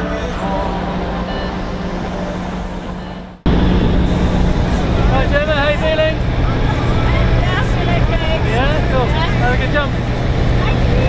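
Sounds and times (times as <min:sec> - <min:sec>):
background music: 0:00.0 - 0:09.4
aircraft cabin engine drone: 0:00.0 - 0:11.0.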